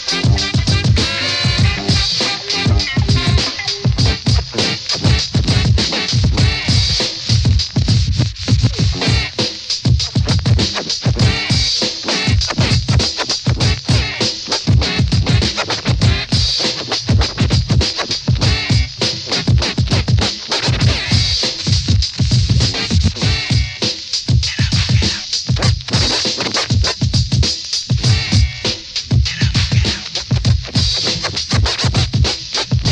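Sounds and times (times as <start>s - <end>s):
drum machine beat: 0.0s - 32.9s
turntable scratching: 0.0s - 32.9s.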